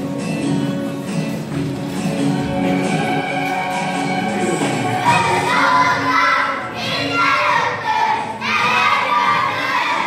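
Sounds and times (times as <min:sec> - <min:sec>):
children chanting in unison: 0:05.0 - 0:10.0.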